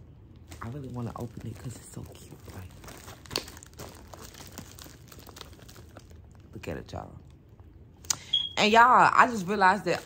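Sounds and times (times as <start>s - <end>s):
tissue paper and cellophane crinkling: 0.4s - 7.0s.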